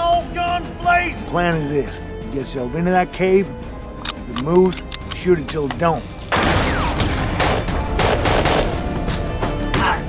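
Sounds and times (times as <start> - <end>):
gunshots: 6.3 - 8.8.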